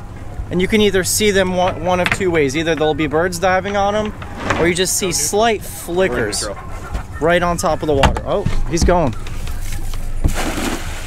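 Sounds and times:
net slapping water: 10.3 - 11.0.

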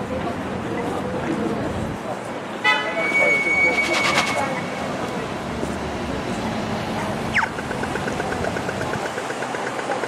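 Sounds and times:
city street traffic: 0.0 - 10.0
rapid ticks: 7.4 - 10.0.

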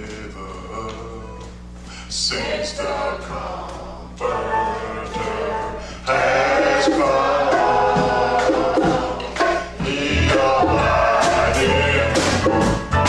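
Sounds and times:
choir singing gospel: 2.1 - 13.0.

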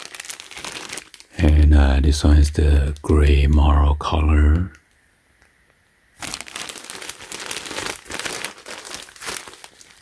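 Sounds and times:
plastic bag crinkling: 0.0 - 2.2, 6.2 - 10.0.

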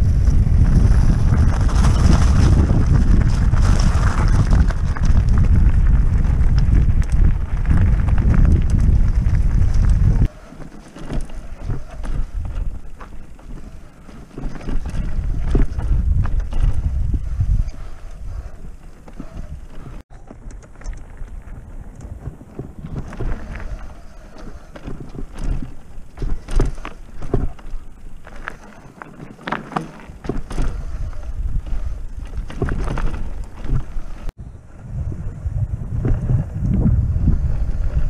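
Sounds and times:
wind buffeting microphone: 0.0 - 10.4, 11.0 - 28.6, 30.1 - 38.0
bike frame rattling: 0.0 - 34.3
bike tyres rumbling on rough trail: 0.0 - 38.0.

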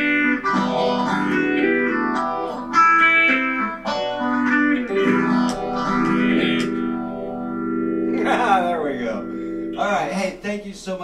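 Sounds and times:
electric guitar chord ringing: 0.0 - 10.1.

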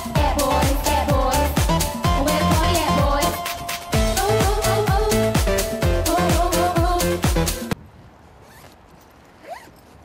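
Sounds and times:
bag zipper being pulled: 8.3 - 10.0.

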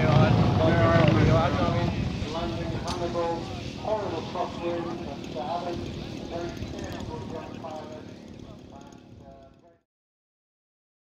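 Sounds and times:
microphone wind rumble: 0.0 - 8.5
indistinct voices talking: 0.0 - 9.5
model aircraft engine: 0.0 - 9.8.

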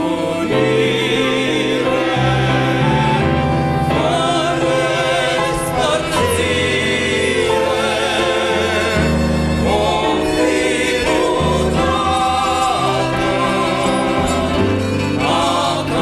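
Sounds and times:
digital piano: 0.0 - 16.0
group singing a hymn: 0.0 - 16.0.

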